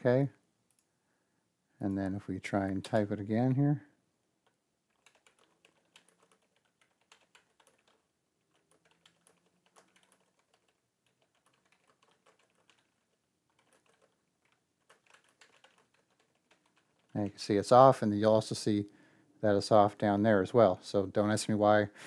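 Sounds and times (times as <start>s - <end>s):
typing on computer keyboard: 4.9s - 17.3s.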